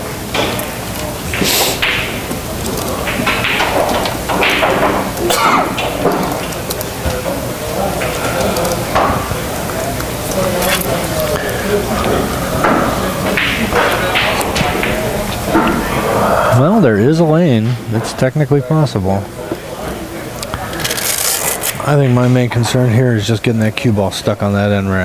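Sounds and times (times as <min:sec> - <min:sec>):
background voices: 0:00.0 - 0:18.4.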